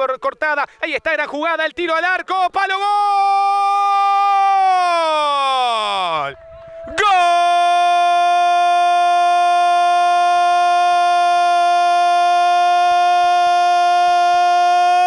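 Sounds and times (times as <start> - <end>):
man shouting goal cry: 2.6 - 6.2, 6.9 - 15.0.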